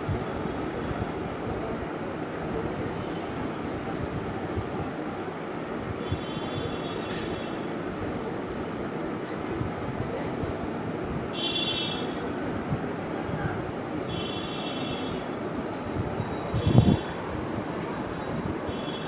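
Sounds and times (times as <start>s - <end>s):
low rumbling background noise: 0.0s - 19.0s.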